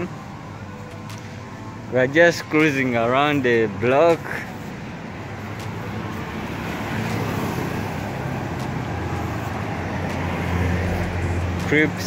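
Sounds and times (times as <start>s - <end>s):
road traffic passing: 0.0s - 12.0s
low engine hum: 4.4s - 12.0s.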